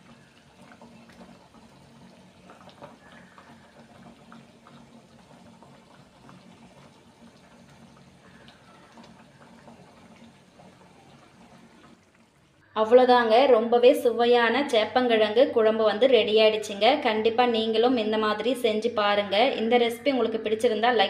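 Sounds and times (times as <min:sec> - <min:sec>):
gravy bubbling in a pot: 0:00.0 - 0:12.7
low steady hum: 0:00.0 - 0:21.0.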